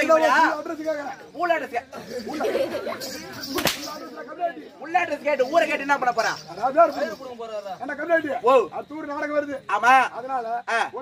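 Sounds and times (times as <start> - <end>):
murmur of voices: 0.0 - 11.0
whip cracking: 3.4 - 4.0.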